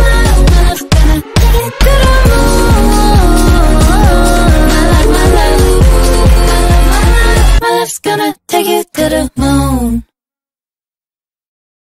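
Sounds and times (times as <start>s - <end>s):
pop song sung note: 0.0s - 10.0s.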